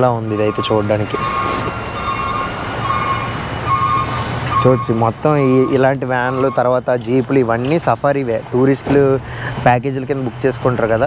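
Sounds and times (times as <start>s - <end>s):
vehicle reversing alarm beeping: 0.0s - 7.8s
traffic hum: 0.0s - 11.0s.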